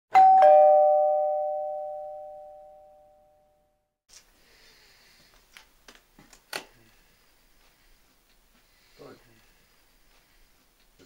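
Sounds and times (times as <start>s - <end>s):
two-note doorbell chime: 0.1s - 3.6s.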